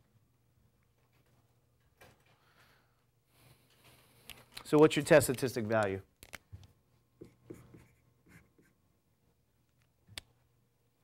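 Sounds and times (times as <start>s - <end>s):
pen scratching while writing: 7.2s - 8.8s.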